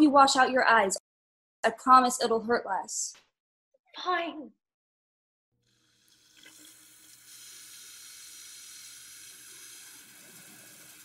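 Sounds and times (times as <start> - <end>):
tap running into a sink: 6.4 - 6.8.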